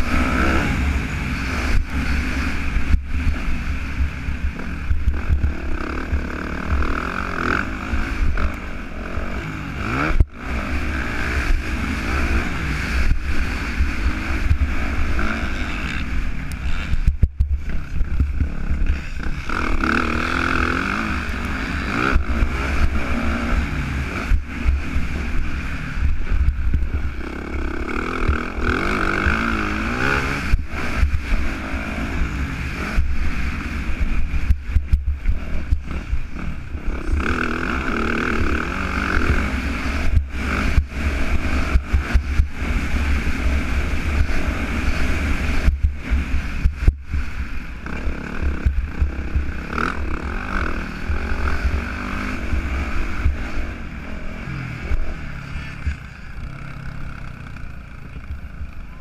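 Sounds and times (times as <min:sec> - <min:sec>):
motorcycle engine revving: 0:00.0 - 0:59.0
wind rumbling on microphone: 0:00.0 - 0:59.0.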